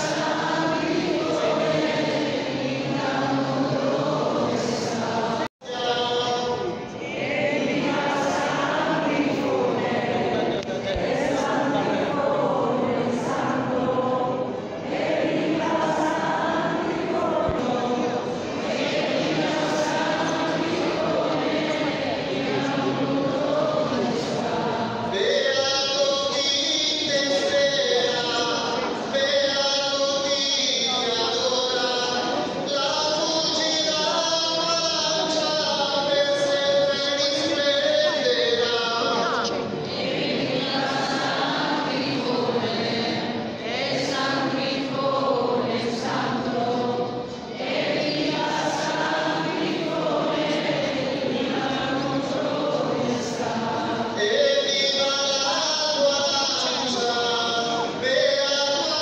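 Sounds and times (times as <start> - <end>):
group singing in church: 0.0 - 59.0.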